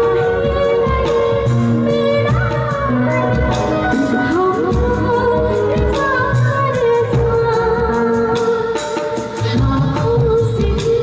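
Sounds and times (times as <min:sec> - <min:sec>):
amplified band accompaniment: 0:00.0 - 0:11.0
woman singing into a microphone: 0:00.0 - 0:11.0.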